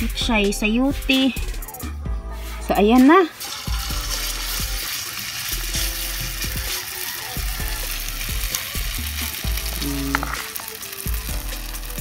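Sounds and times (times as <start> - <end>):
batter frying in hot oil: 2.7 - 12.0.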